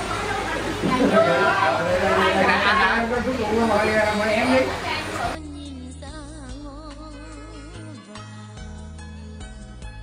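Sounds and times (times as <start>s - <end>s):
people talking: 0.0s - 5.4s.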